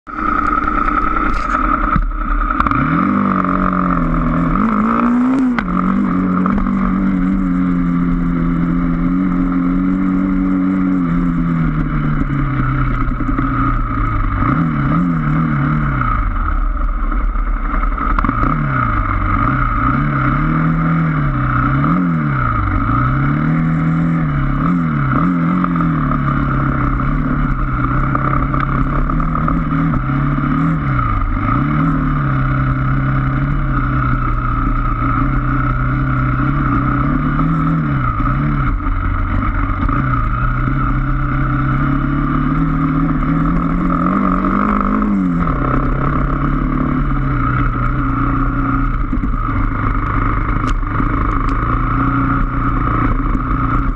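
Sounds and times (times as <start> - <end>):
motorcycle engine revving: 0.0 - 53.9
steady high whine: 0.0 - 53.9.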